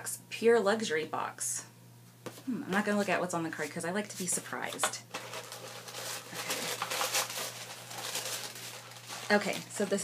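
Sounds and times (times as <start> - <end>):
cardboard and paper rustling: 2.9 - 10.0.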